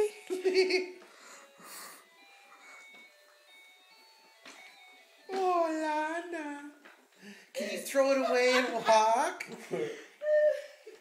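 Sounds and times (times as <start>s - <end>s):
electronic toy tune beeping: 1.2s - 5.3s.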